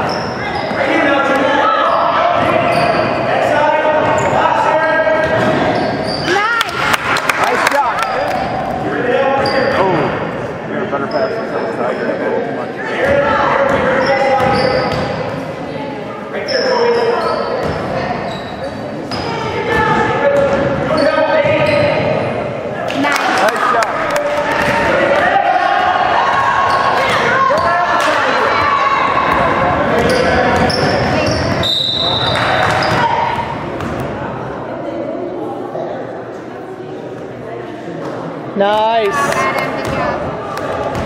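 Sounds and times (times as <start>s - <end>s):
voices echoing in hall: 0.0s - 41.0s
spectators shouting: 24.4s - 30.0s
referee whistle blowing: 31.3s - 32.4s.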